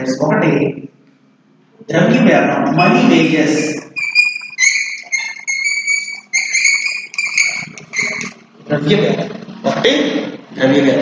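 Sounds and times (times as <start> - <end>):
chalk squeaking on blackboard: 3.8 - 8.4.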